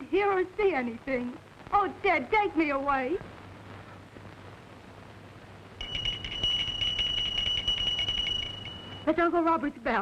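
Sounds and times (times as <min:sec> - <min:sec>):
call bell ringing: 0:05.8 - 0:09.2.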